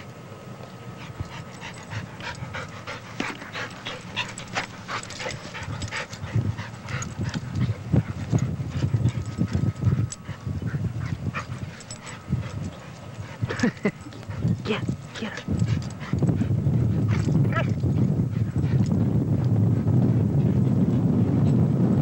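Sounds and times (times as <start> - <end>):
dogs panting: 0.6 - 21.1
dogs scuffling: 1.0 - 17.8.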